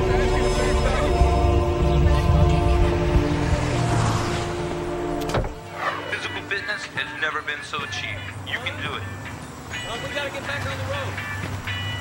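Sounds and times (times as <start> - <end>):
car low rumble: 0.0 - 6.3.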